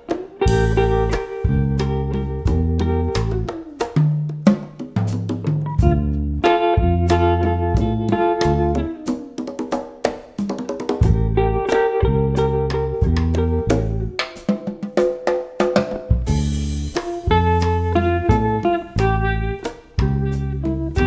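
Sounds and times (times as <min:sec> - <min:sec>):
drums keeping time: 0:00.0 - 0:21.0
electric guitar melody: 0:00.0 - 0:21.0
sustained bass notes: 0:00.4 - 0:03.6, 0:05.6 - 0:09.0, 0:11.0 - 0:14.2, 0:16.2 - 0:21.0.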